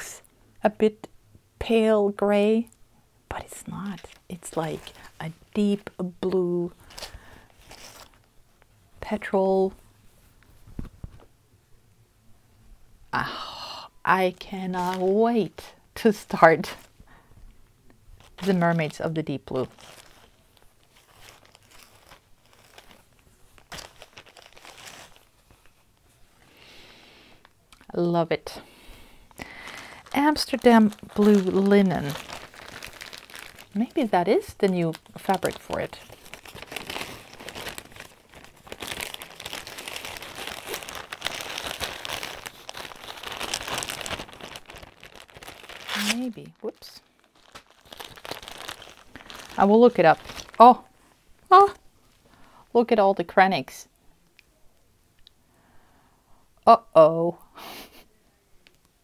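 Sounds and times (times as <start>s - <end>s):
fabric rustling: 19.6s - 26.4s, 29.7s - 50.7s.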